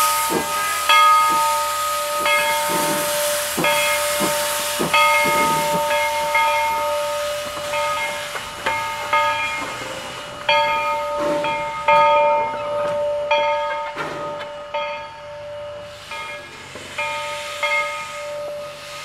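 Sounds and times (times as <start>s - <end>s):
steam exhaust chuffs: 0.0s - 13.0s
locomotive bell ringing: 0.0s - 19.0s
steam hissing: 0.0s - 19.0s.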